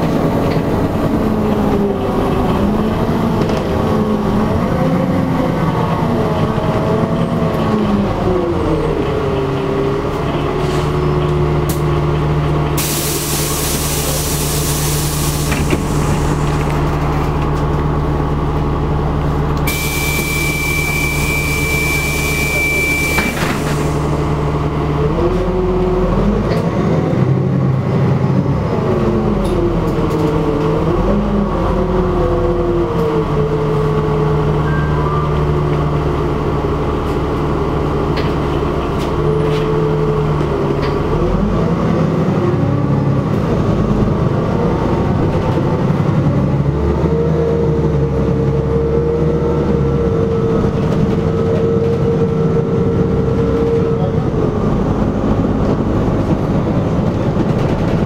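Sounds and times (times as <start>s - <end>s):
bus engine: 0.0s - 58.0s
compressed air hissing: 12.8s - 16.4s
steady high beep: 19.7s - 23.3s.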